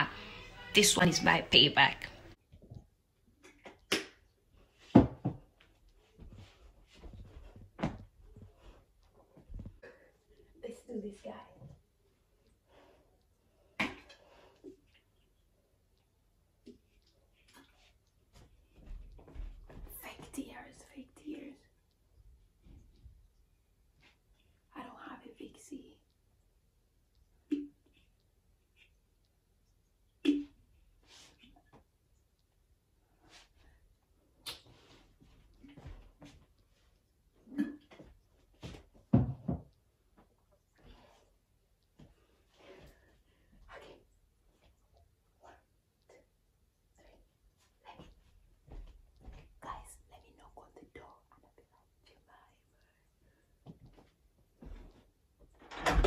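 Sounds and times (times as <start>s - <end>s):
person whispering: 49.6s - 53.1s.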